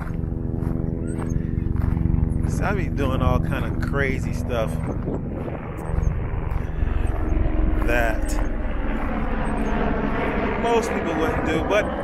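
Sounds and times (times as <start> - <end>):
low rumble with motor hum: 0.0 - 12.0
person speaking: 2.4 - 4.9, 7.8 - 8.4, 10.6 - 12.0.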